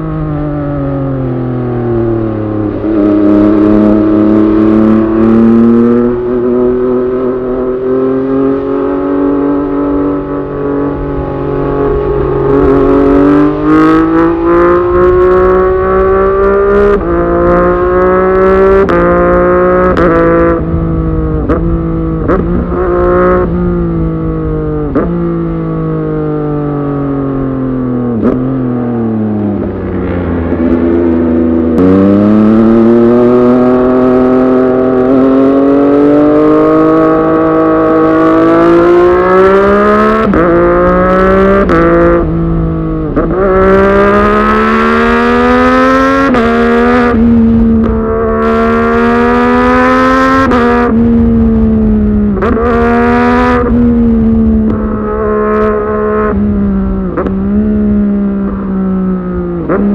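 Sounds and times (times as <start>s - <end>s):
motorcycle engine accelerating: 0.0s - 59.9s
wind rush: 2.0s - 25.6s, 28.1s - 35.3s.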